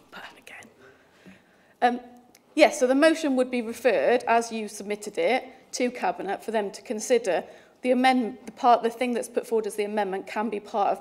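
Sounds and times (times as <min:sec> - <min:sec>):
breathing: 0:00.8 - 0:01.8, 0:07.5 - 0:07.8.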